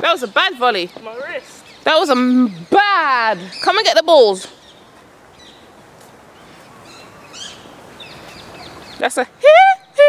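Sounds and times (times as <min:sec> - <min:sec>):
outdoor background noise: 0:00.0 - 0:10.0
small birds chirping: 0:00.0 - 0:10.0.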